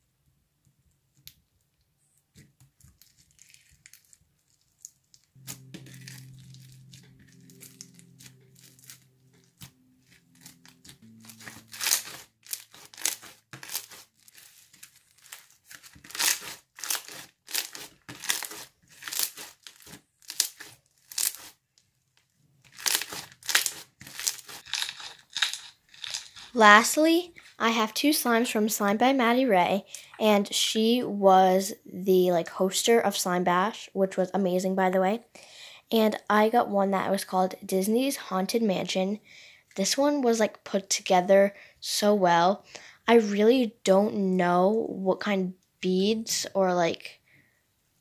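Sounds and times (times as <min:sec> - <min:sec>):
slime crunching and popping: 0:02.4 - 0:21.6, 0:22.6 - 0:26.6.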